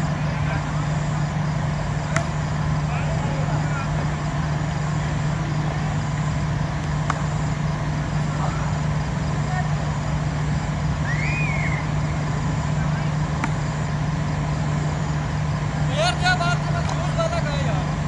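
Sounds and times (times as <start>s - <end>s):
constant low hum: 0.0s - 18.0s.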